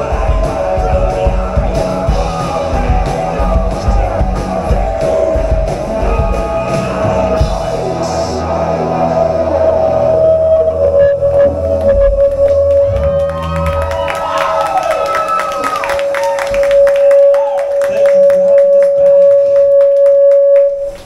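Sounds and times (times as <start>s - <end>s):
low bass drone: 0.0s - 14.6s
long steady high tone: 7.4s - 13.3s, 15.6s - 21.0s
crowd clapping and cheering: 10.2s - 20.9s.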